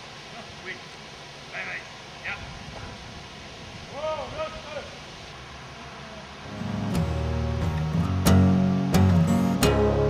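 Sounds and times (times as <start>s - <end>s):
outdoor background hiss: 0.0s - 10.0s
acoustic guitar music: 6.4s - 10.0s.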